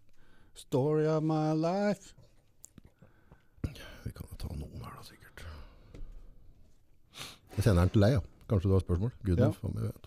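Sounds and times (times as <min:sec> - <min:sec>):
man speaking in a low voice: 0:03.6 - 0:05.8, 0:07.5 - 0:10.0.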